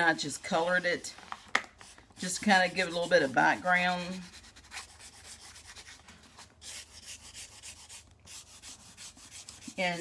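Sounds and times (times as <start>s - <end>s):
marker scratching on tape: 1.8s - 6.0s, 6.6s - 10.0s.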